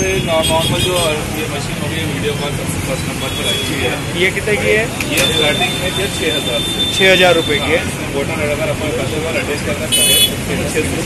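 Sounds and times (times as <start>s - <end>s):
street traffic: 0.0s - 11.0s
high-pitched vehicle horn toot: 9.9s - 10.4s.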